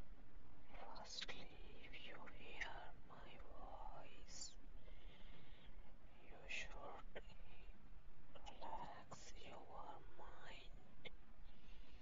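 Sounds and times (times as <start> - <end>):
person whispering: 0.7 - 4.6, 6.1 - 7.7, 8.4 - 10.8.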